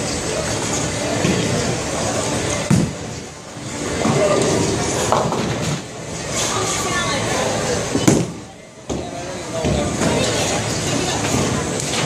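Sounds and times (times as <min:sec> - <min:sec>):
voices in bowling alley: 0:00.0 - 0:12.0.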